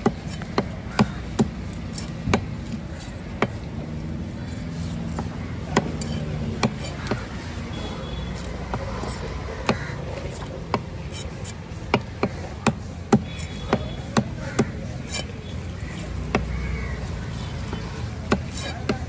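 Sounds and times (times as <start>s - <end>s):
cleaver chopping on wooden block: 0.0s - 19.0s
steady background noise: 0.0s - 19.0s.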